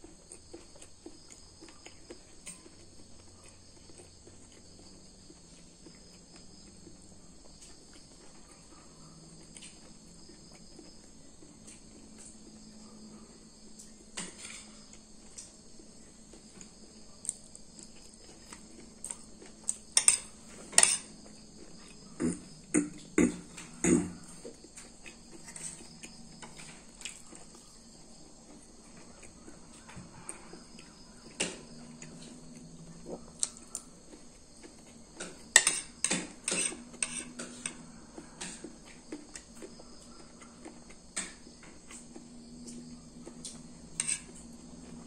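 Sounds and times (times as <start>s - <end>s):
cutlery clinking on a plate: 20.0s - 21.2s, 35.2s - 37.8s, 44.0s - 44.4s.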